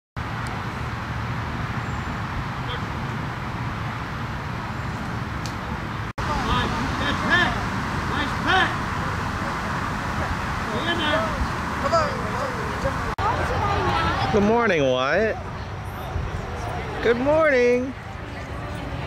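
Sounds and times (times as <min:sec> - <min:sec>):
outdoor background noise: 0:00.2 - 0:19.0
people talking and calling: 0:06.2 - 0:19.0.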